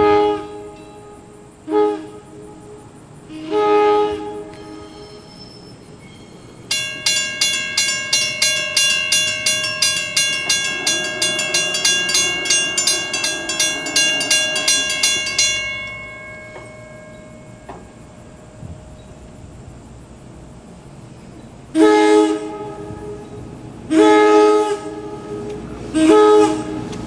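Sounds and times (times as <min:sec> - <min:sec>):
train horn blast: 0:00.0 - 0:05.3, 0:21.7 - 0:27.0
mechanical crossing bell ringing: 0:04.9 - 0:18.4.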